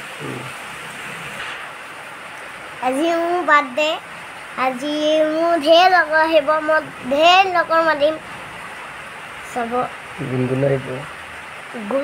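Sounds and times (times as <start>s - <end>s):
steady background hiss: 0.0s - 12.0s
low voice murmur: 0.2s - 0.5s.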